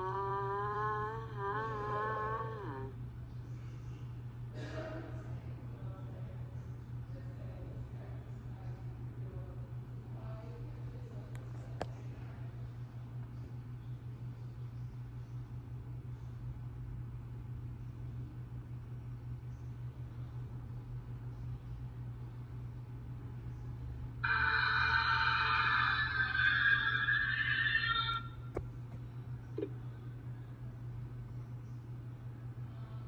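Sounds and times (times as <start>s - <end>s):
steady low hum: 0.0s - 33.0s
sustained electronic tone: 24.2s - 28.6s.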